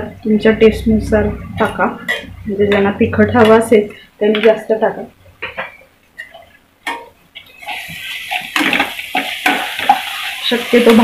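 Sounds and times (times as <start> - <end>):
onions sizzling in oil: 7.4 - 11.0.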